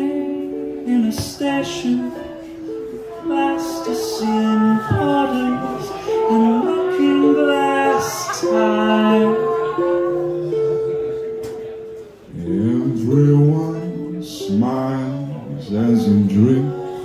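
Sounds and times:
acoustic guitar: 0:00.0 - 0:17.0
person singing: 0:00.0 - 0:17.0.

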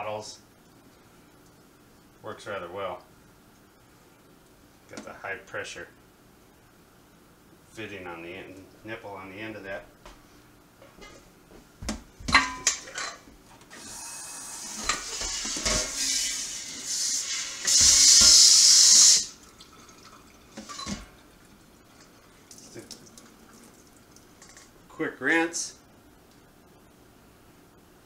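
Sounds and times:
water jet spraying inside keg: 0:13.7 - 0:24.7.

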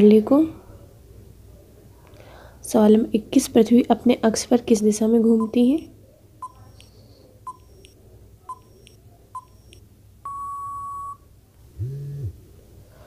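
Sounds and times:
steady electronic beep: 0:08.5 - 0:11.2.

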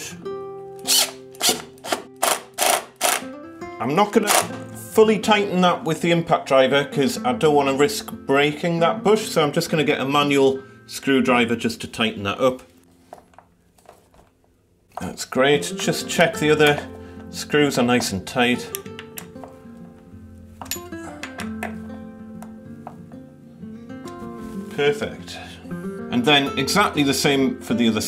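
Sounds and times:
background music: 0:00.0 - 0:13.5, 0:15.0 - 0:28.0
impact driver driving screw: 0:00.8 - 0:03.3, 0:04.3 - 0:04.5.

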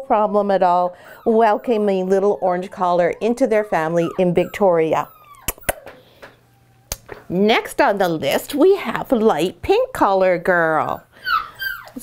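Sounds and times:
puppy whimpering: 0:00.6 - 0:06.9, 0:10.9 - 0:12.0
puppy whining: 0:00.6 - 0:06.9, 0:10.9 - 0:12.0
sharp clicks: 0:05.4 - 0:07.2.

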